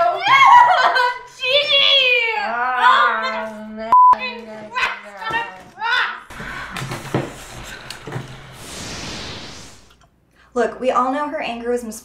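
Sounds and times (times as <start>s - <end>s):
censor bleep: 3.9s - 4.2s
room noise: 4.4s - 10.1s.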